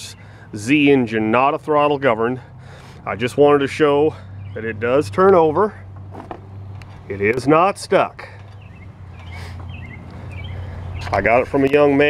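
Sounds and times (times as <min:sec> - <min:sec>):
birds chirping faintly: 0:00.0 - 0:01.9, 0:03.5 - 0:05.8, 0:06.5 - 0:12.0
low outdoor rumble: 0:00.0 - 0:12.0.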